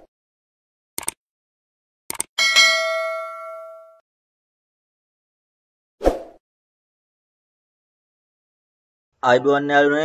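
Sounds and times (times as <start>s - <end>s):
bright bell ding: 2.4s - 4.0s.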